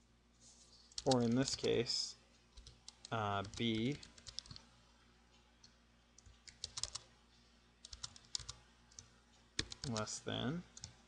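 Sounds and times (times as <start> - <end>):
quiet keyboard typing: 0.8 - 4.7, 5.6 - 7.1, 7.8 - 11.0.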